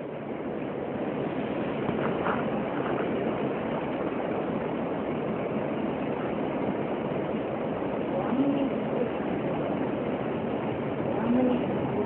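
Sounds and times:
steady rushing background noise: 0.0 - 12.0.

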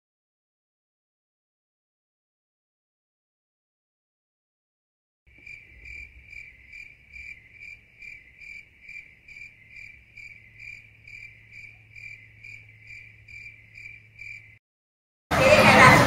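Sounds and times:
cricket chirping: 5.3 - 14.6
faint low hum: 5.3 - 14.6.

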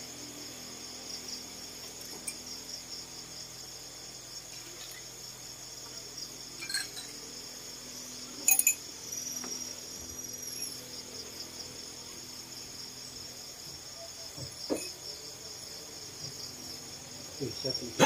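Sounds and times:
night insects chirring: 0.0 - 18.0.

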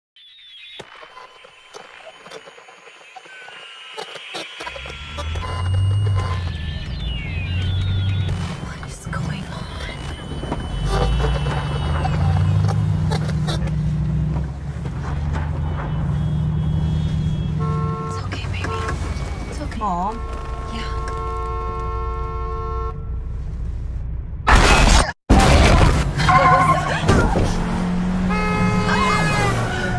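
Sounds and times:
radio static and whistling tones: 0.2 - 13.8
car engine rumble and road noise: 4.6 - 29.9
car horn blare: 10.5 - 13.8, 15.5 - 19.2, 19.8 - 23.2, 26.2 - 27.2, 28.1 - 29.9.

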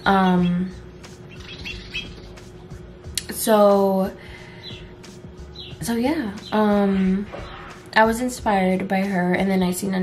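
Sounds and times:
high bird chirps: 0.0 - 2.4
steady low hum: 0.0 - 10.0.

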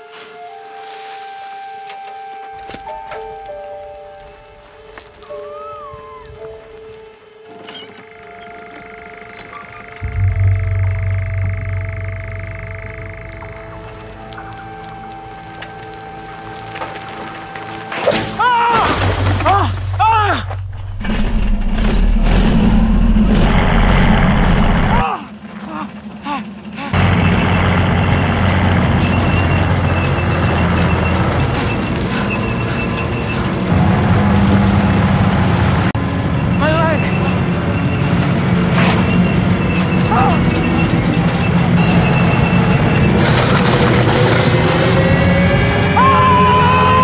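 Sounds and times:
tank engine deep rumble: 7.0 - 18.0, 19.7 - 47.0.

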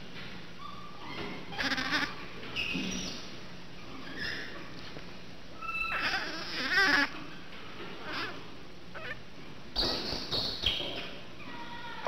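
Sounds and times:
infant monkey calling: 0.6 - 2.2, 5.6 - 7.2, 8.0 - 9.2.

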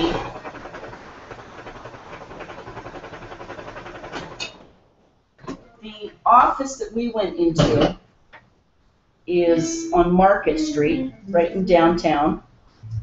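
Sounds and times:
electric sewing machine running: 0.0 - 4.5.

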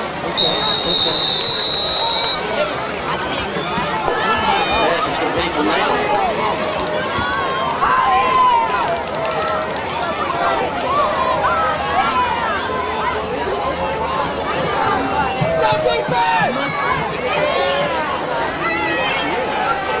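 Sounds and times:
crowd chatter and calls: 0.0 - 20.0
referee's whistle blowing: 0.3 - 2.5.

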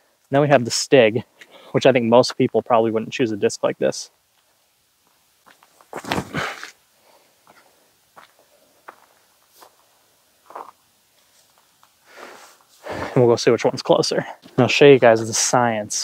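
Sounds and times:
faint rustles and ticks: 4.2 - 6.0, 7.0 - 12.9
feet scuffing: 5.4 - 6.8, 7.4 - 9.8, 10.4 - 11.7.

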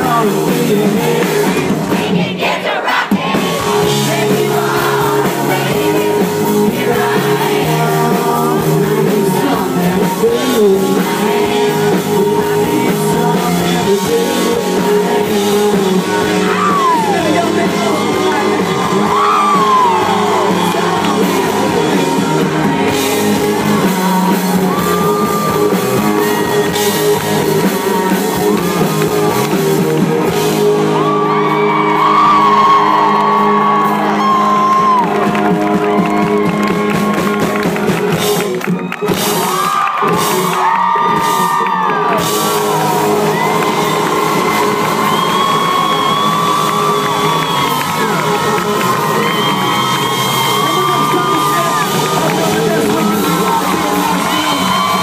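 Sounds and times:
electric guitar: 0.0 - 2.2, 3.3 - 55.0
live country-rock band: 0.0 - 55.0
crowd whooping: 2.7 - 55.0.

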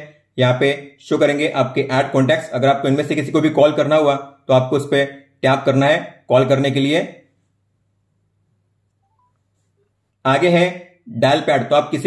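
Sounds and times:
man speaking: 0.0 - 7.3, 10.2 - 12.0.

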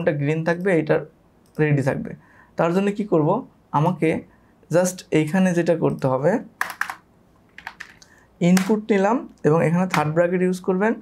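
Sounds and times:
typing on computer keyboard: 6.6 - 8.8.

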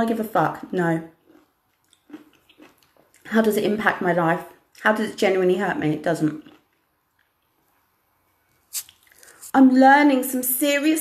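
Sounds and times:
faint mouth sounds: 8.4 - 9.6.

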